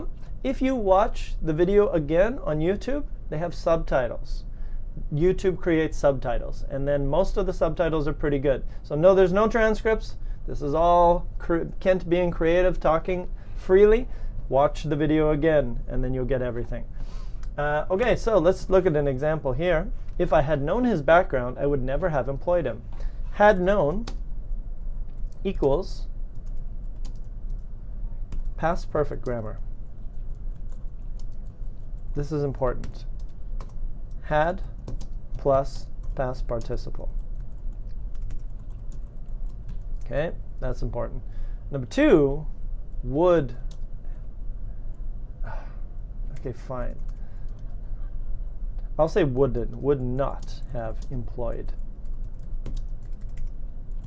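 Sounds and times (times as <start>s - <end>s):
low steady hum: 0.0s - 54.0s
computer keyboard typing: 25.2s - 27.7s, 28.3s - 28.5s, 29.2s - 31.8s, 32.7s - 40.1s, 52.0s - 54.0s
typing on computer keyboard: 26.3s - 27.6s, 34.6s - 35.2s, 37.4s - 40.1s, 52.0s - 54.0s.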